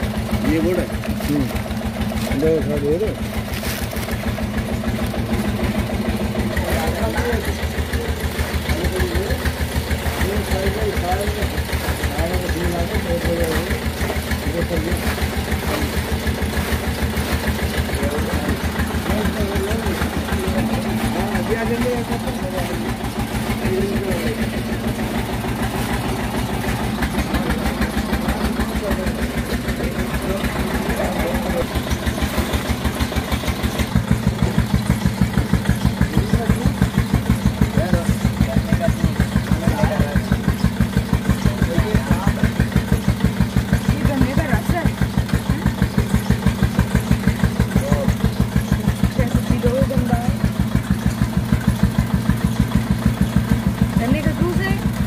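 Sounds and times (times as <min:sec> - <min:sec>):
engine pulsing steadily: 0:00.0 - 0:55.0
faint voices: 0:04.6 - 0:34.5, 0:35.1 - 0:53.3.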